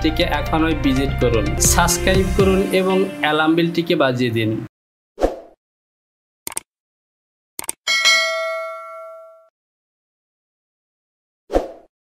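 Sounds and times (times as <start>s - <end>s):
notification bell ding: 7.9s - 9.5s.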